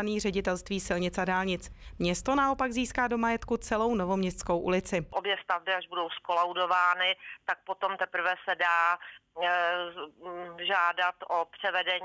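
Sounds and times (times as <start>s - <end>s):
woman talking over telephone: 0.0s - 12.0s.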